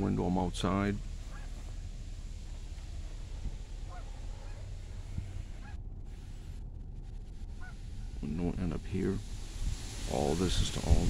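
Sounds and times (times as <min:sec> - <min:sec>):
low background hum: 0:00.0 - 0:11.0
bird honking calls: 0:01.2 - 0:01.8, 0:03.8 - 0:05.9, 0:07.5 - 0:07.9.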